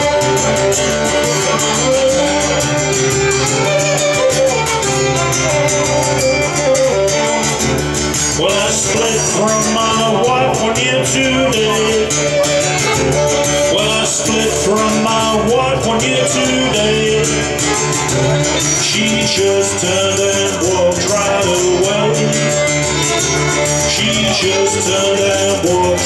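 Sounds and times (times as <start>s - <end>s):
fiddle playing blues melody: 0.0s - 26.0s
strummed acoustic guitar: 0.0s - 26.0s.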